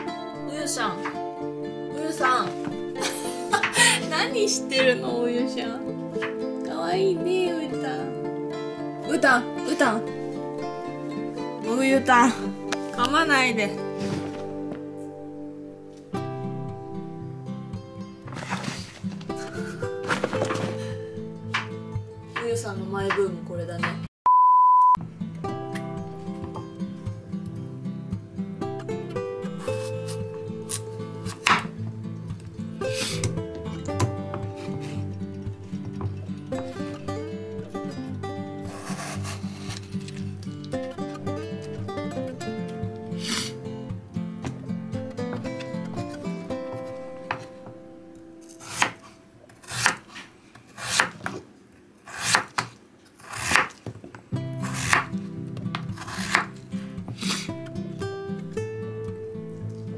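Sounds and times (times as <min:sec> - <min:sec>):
background music: 0:00.0 - 0:24.1, 0:25.0 - 0:49.9, 0:54.3 - 0:59.9
knife slicing on wooden board: 0:38.7 - 0:40.2, 0:54.6 - 0:55.1, 0:56.0 - 0:56.5, 0:57.1 - 0:57.5.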